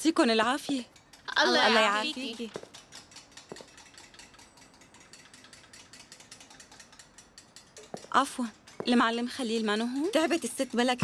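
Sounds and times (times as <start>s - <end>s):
wooden machines clicking and ratcheting: 0.0s - 11.0s.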